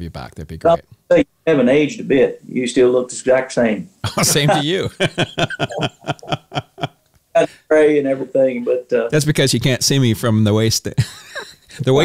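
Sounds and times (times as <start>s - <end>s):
man chuckling: 4.0s - 6.9s.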